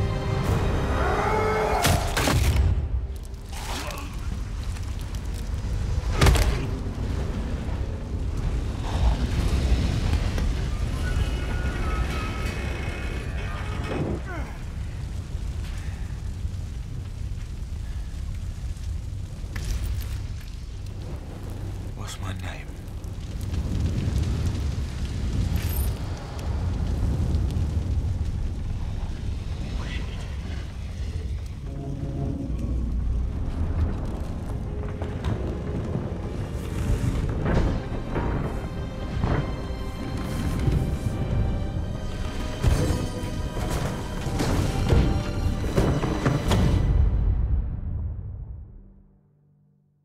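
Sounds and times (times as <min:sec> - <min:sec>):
film score music: 0:00.0 - 0:49.8
fire burning low rumble: 0:02.4 - 0:48.9.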